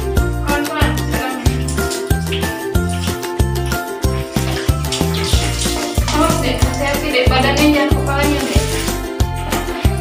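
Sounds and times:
water splashing from dippers: 0.5 - 10.0.

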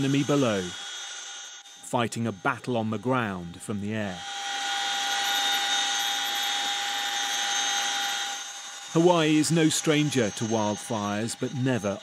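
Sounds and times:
helicopter turbine whine: 0.0 - 12.0.

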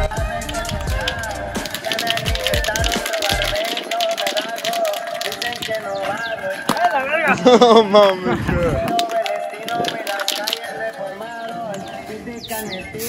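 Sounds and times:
deep bass: 0.0 - 1.6, 3.3 - 3.6
fast ticking percussion: 0.0 - 7.0, 8.8 - 11.9
wavering melody: 0.0 - 7.8.

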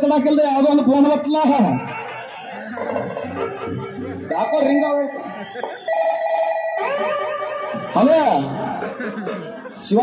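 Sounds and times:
mobile phone ringtone: 1.9 - 7.9.

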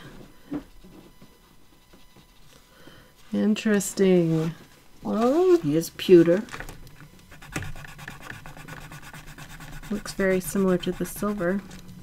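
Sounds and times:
pencil scribbling on paper: 7.3 - 11.6.

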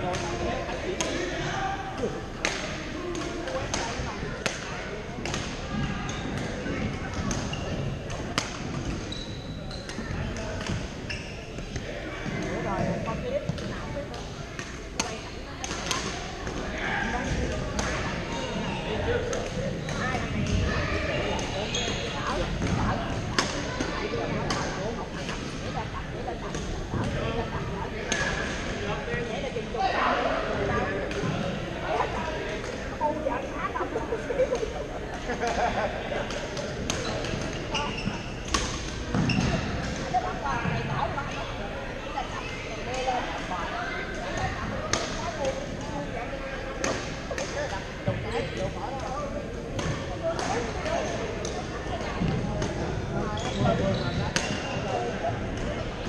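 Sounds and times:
background chatter of players: 0.0 - 56.0.

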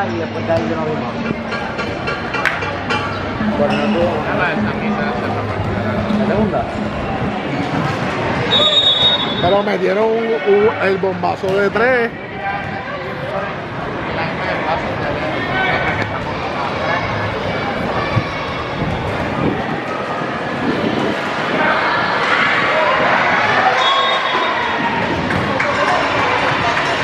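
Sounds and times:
people calling and chattering: 0.0 - 27.0.

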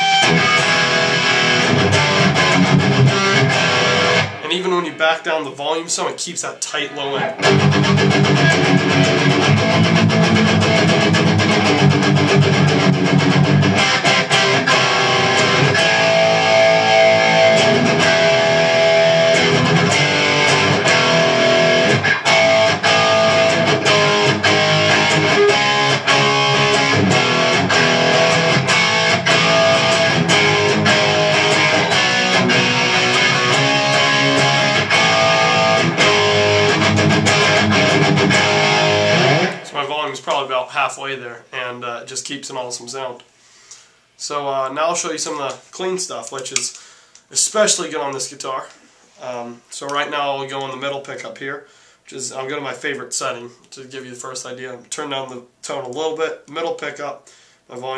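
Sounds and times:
distorted electric guitar lead: 0.0 - 5.1, 6.7 - 40.1.

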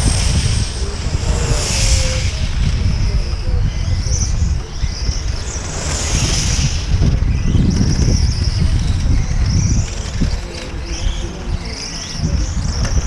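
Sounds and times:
model car engines whining: 0.0 - 13.0
wind buffeting microphone: 0.0 - 13.0.

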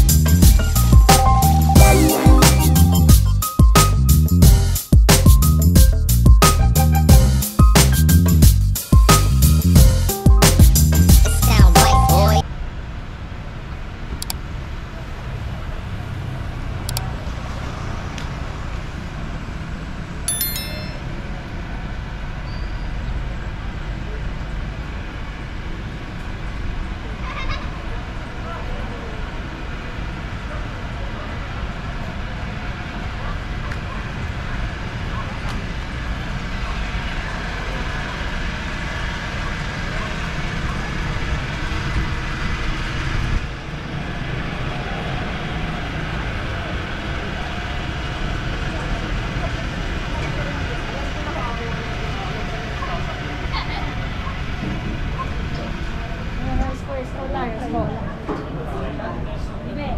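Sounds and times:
road traffic rumble: 0.0 - 20.2, 21.1 - 59.5
high-pitched tone: 1.1 - 3.6, 11.2 - 12.4, 20.3 - 21.3
faint voices of people: 46.2 - 59.9.

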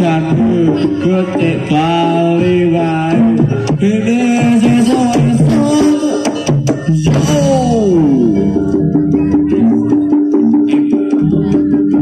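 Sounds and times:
drum stroke: 0.0 - 12.0.

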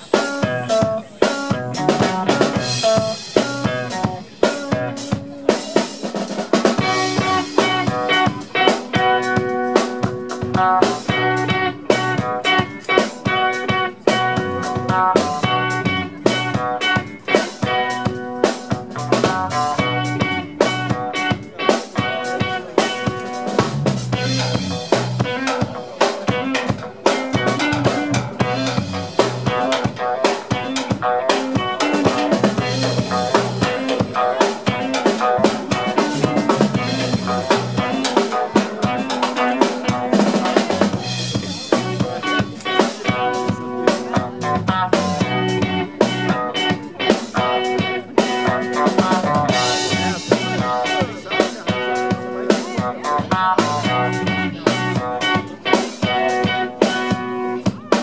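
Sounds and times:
drum kit: 0.0 - 58.0
rock band playing live: 0.0 - 58.0.

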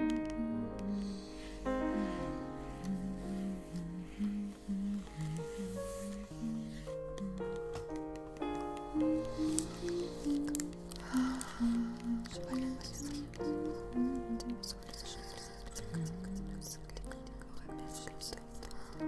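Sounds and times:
slow soft piano music: 0.0 - 19.0
hissy rustle: 1.1 - 7.1
crackling and squishy sounds: 2.8 - 19.0.

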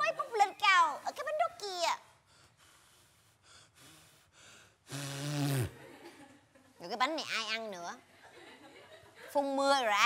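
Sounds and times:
man blowing out candle: 3.7 - 5.8.

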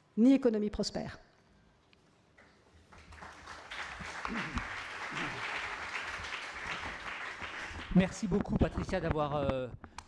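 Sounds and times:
audience applauding: 2.4 - 8.4.

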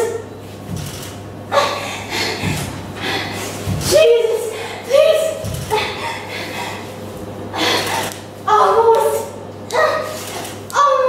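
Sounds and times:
woman gasping: 1.5 - 3.7, 4.4 - 4.9, 5.7 - 8.2.

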